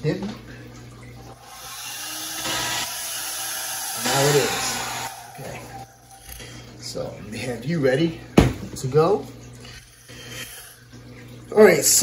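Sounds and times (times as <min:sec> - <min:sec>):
hair dryer running: 0:01.4 - 0:06.4.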